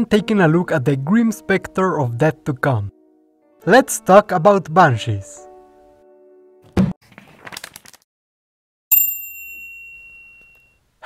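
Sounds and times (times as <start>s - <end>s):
bright bell-like chime: 8.9s - 10.8s.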